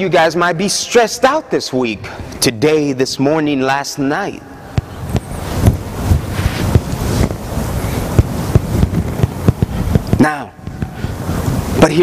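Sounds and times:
cloth rubbing on microphone: 4.8s - 11.8s.

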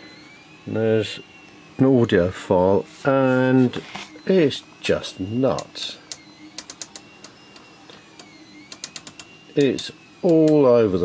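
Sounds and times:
faint high whine: 0.0s - 11.0s
rotary knob clicking: 6.1s - 7.1s, 8.2s - 10.6s.

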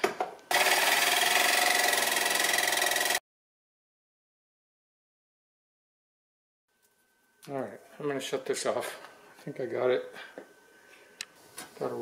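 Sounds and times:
jigsaw cutting sheet metal: 0.5s - 3.2s.

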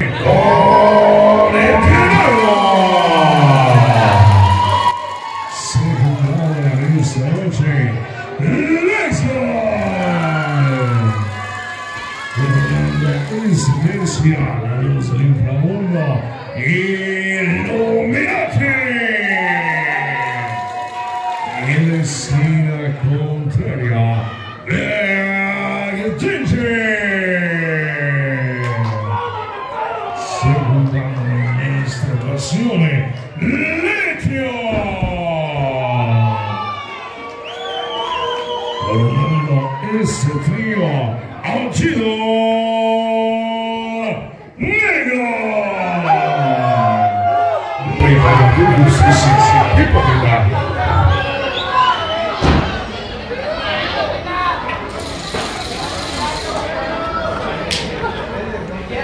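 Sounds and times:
crowd noise: 0.0s - 59.0s.

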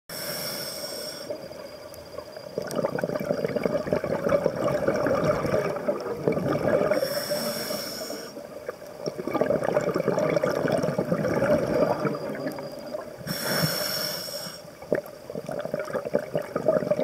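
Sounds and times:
hissing regulator inhale: 0.1s - 1.4s, 6.9s - 8.4s, 13.2s - 14.8s
bubbles gurgling on exhale: 2.5s - 7.2s, 8.4s - 13.3s, 14.8s - 17.0s.

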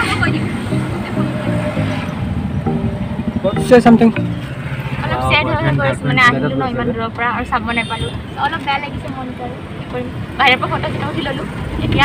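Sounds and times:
background music: 0.0s - 6.6s.

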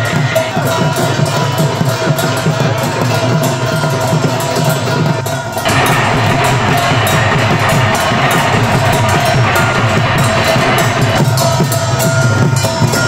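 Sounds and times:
drums beaten in fast rhythm: 0.0s - 13.0s
ringing metal gongs: 5.5s - 13.0s.

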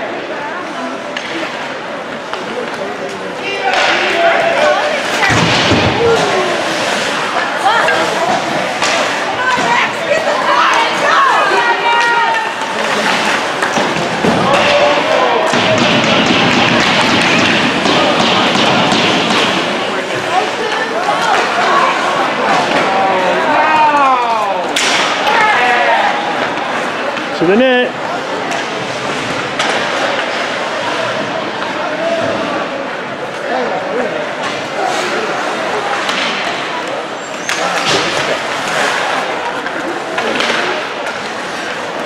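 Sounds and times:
spectators shouting and chatting: 0.0s - 42.0s
hockey sticks: 0.6s - 42.0s
skates scraping ice: 1.2s - 42.0s.

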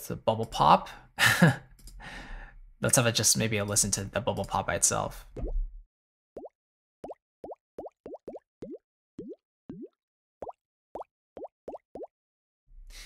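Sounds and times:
bubble pops: 5.4s - 5.8s, 6.4s - 12.1s.

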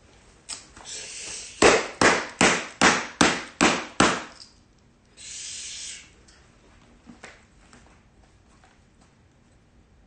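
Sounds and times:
hand slapping book pages: 1.6s - 4.3s.

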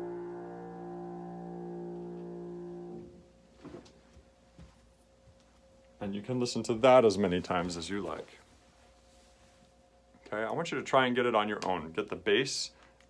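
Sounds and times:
piano chord ringing: 0.0s - 3.4s
faint knocks and rustles: 3.5s - 5.7s.

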